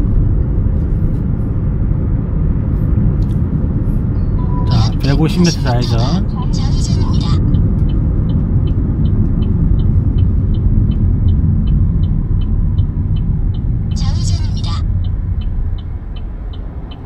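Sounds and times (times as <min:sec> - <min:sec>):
engine and tyre rumble: 0:00.0 - 0:17.0
turn signal ticking: 0:04.4 - 0:17.0.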